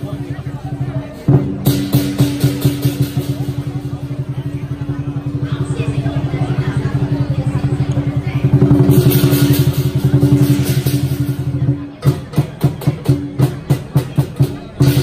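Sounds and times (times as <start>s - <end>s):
cymbals crashing: 0.0s - 15.0s
drum roll: 0.0s - 15.0s.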